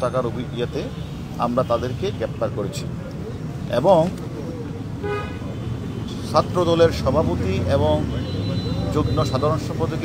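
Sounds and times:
street traffic rumble: 0:00.0 - 0:10.0
vehicle horn toot: 0:05.0 - 0:05.4.

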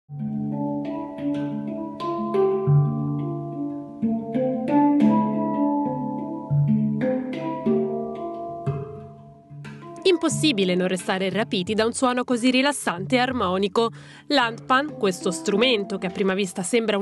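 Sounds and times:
handpan notes ringing: 0:00.1 - 0:12.0.

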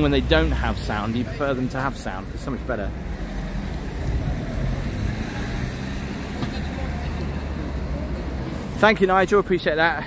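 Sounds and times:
road traffic rumble: 0:00.0 - 0:10.0
street noise: 0:00.0 - 0:10.0.

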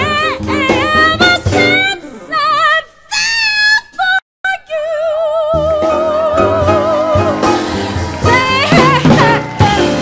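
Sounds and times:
woman singing jazz: 0:00.0 - 0:10.0.

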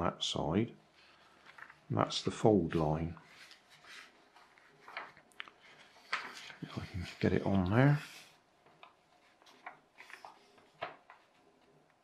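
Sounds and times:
paper rustling and sliding on felt: 0:02.7 - 0:11.8.

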